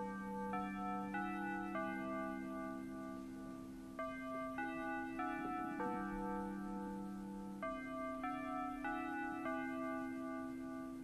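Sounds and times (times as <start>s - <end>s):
chiming keyboard melody: 0.0s - 11.0s.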